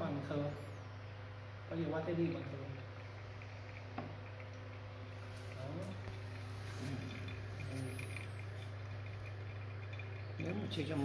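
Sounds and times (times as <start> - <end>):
steady low hum: 0.0 - 11.0
coffee dripping into glass: 2.1 - 11.0.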